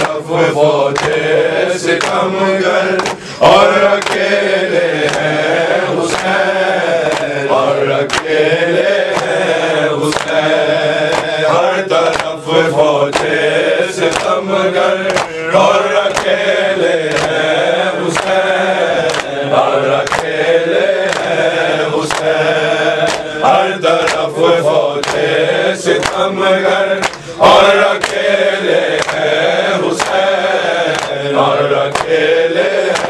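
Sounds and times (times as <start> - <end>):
men chanting a lament: 0.0 - 33.0.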